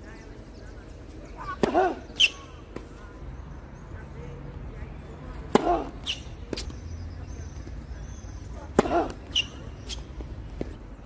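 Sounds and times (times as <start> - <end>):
racket hitting tennis ball: 1.5 - 2.9, 5.4 - 6.8, 8.6 - 10.8.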